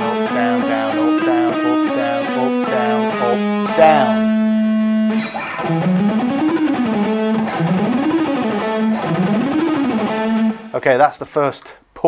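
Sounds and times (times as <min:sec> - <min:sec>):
electric guitar picking: 0:00.0 - 0:10.8.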